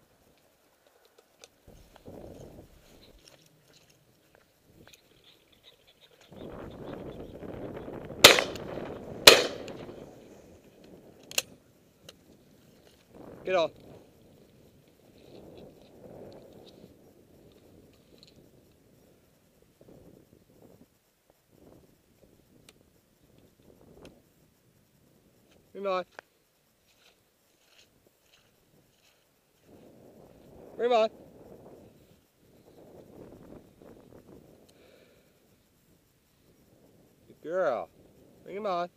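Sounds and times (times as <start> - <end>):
faint soft sounds: 0.0 - 8.1, 9.8 - 38.9
steady rustling noise: 0.0 - 38.9
wind on microphone: 1.7 - 3.3, 4.6 - 20.9, 21.5 - 24.3, 28.2 - 35.1
shotgun shots: 8.2 - 9.9.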